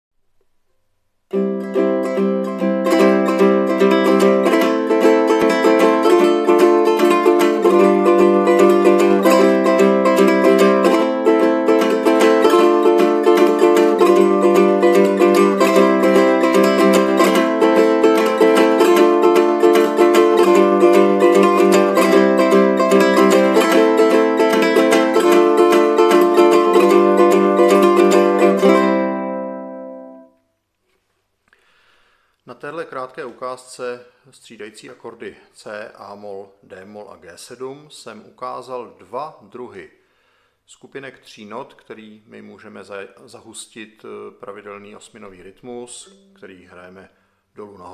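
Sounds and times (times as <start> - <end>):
ukulele fingerpicked chords: 1.3 - 30.4, 46.0 - 46.8.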